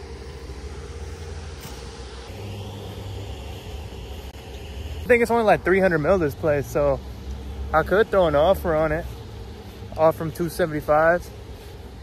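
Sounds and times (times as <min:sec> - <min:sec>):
faint hiss: 0:00.0 - 0:12.0
low engine-like rumble: 0:00.0 - 0:12.0.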